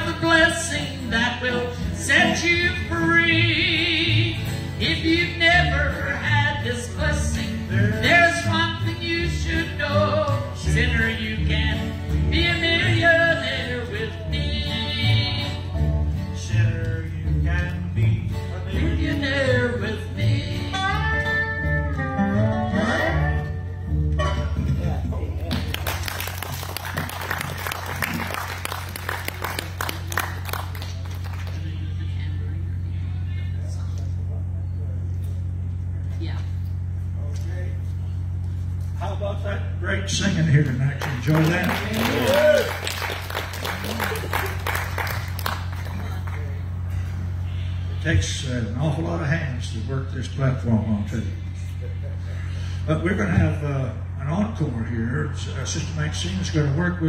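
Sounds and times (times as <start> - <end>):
dobro: 0.0 - 25.9
acoustic guitar: 0.0 - 33.6
low hum from sound system: 0.0 - 57.0
upright bass: 0.0 - 57.0
people clapping: 25.4 - 32.2, 40.6 - 46.7.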